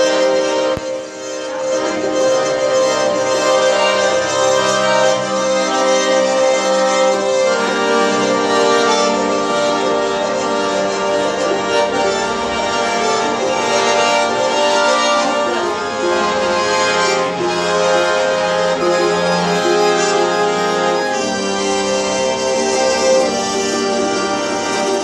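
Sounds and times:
accordion playing melody: 0.0s - 25.0s
plucked string instrument: 0.0s - 25.0s.

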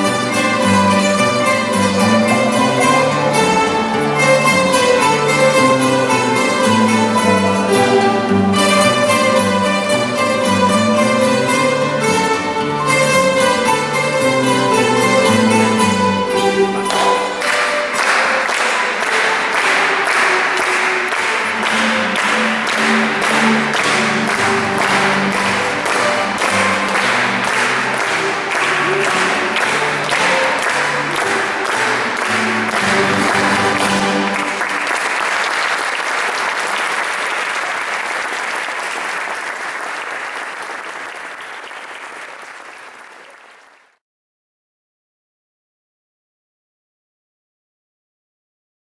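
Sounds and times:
guitars strumming and plucking: 0.0s - 17.9s, 21.4s - 34.5s
audience applause: 0.0s - 44.0s.

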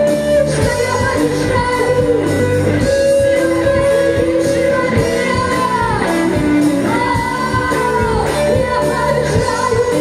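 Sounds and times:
strummed guitars: 0.0s - 10.0s
woman singing lead vocal: 0.0s - 10.0s.

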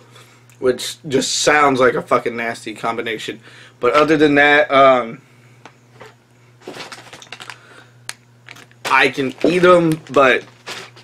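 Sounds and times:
chip bag crinkling: 6.6s - 7.7s, 8.4s - 11.0s.

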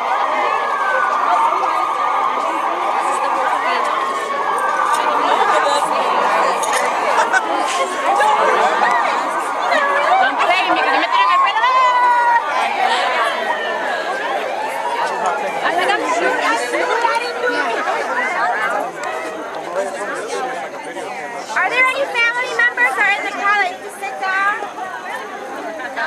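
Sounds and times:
crowd talking and calling out: 0.0s - 26.0s.

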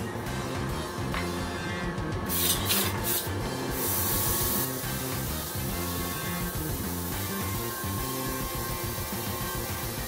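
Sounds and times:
background music: 0.0s - 10.0s
airbrush spraying hiss: 2.3s - 10.0s.

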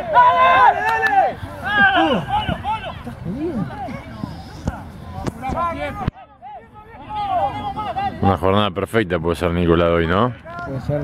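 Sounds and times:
footballers shouting: 0.0s - 8.5s.

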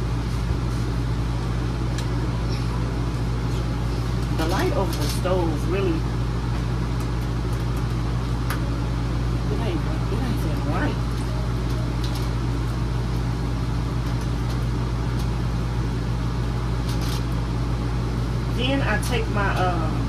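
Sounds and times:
low machine hum: 0.0s - 20.0s.

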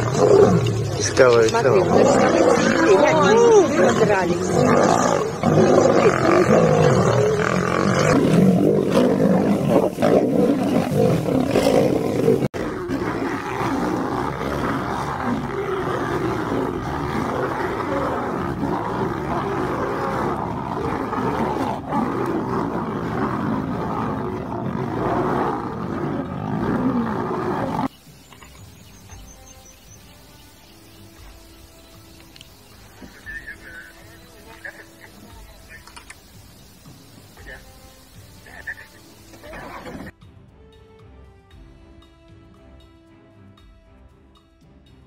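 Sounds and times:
lions roaring and snarling: 0.0s - 29.5s, 37.3s - 40.1s.

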